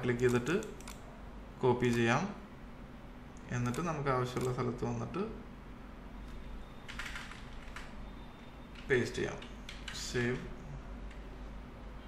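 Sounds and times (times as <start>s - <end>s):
keyboard typing: 0.0s - 1.1s, 3.6s - 4.6s, 6.8s - 8.0s, 8.7s - 10.2s.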